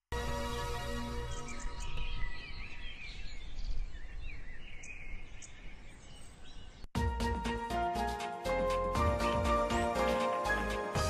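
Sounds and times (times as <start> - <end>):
birds chirping: 0.2 - 6.9
music with a beat: 7.0 - 11.0.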